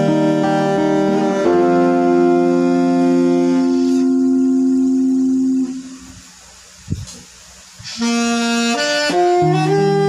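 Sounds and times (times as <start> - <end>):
acoustic guitar and saxophone: 0.0 - 6.3, 7.8 - 10.0.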